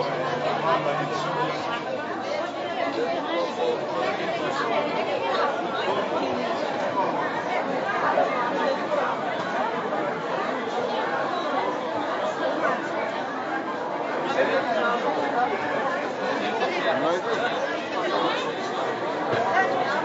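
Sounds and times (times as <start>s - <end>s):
crowd chattering: 0.0s - 20.0s.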